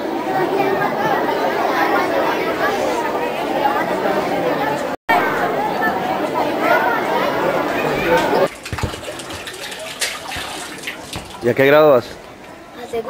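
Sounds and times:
children chattering: 0.0 - 13.0
water tap running: 8.5 - 11.6.

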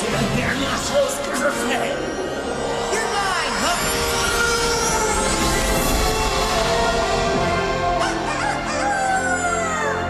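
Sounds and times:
soundtrack music: 0.0 - 10.0.

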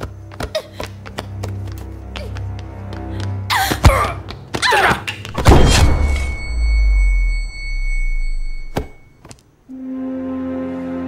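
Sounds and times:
high-pitched ringing tone: 6.0 - 9.2
soft music: 9.6 - 11.0.

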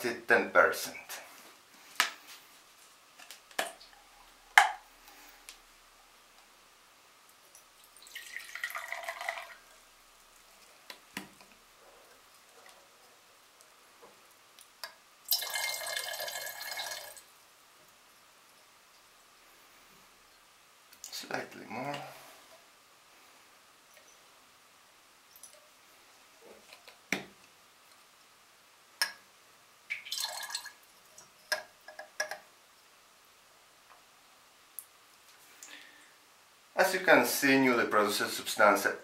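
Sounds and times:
liquid pouring into glassware: 7.6 - 9.8, 15.3 - 17.3, 29.9 - 32.4
glassware clicking and knocking: 31.5 - 32.4.

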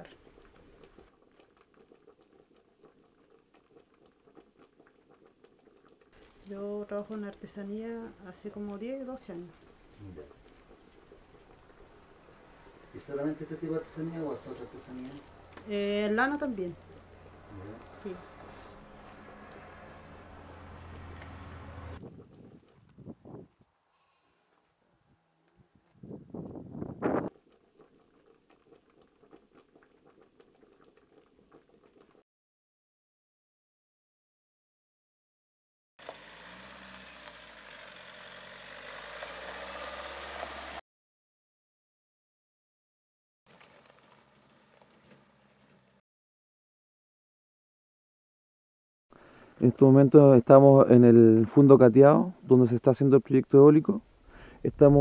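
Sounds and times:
dry fibre ticking and crackling: 0.0 - 18.7
sheep cropping grass: 14.5 - 15.6.

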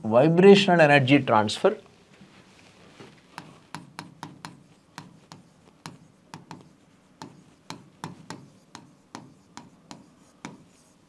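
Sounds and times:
pen tapping and scraping on board: 3.3 - 11.0.

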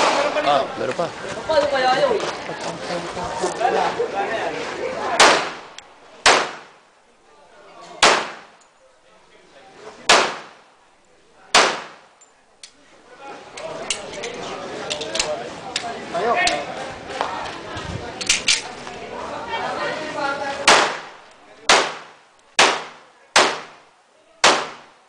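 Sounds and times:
pistol shots with echo: 5.2 - 5.6, 6.2 - 6.7, 8.0 - 8.6, 10.1 - 10.6, 11.5 - 12.0, 20.7 - 23.8, 24.4 - 24.9
gun metallic clicks: 12.2 - 12.8, 14.9 - 15.9, 18.2 - 18.7.

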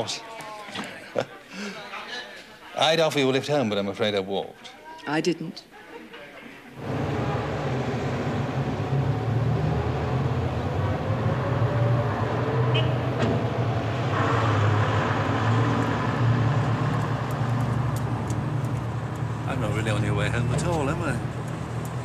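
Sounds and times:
car engine: 6.8 - 22.0
road noise: 6.8 - 22.0.

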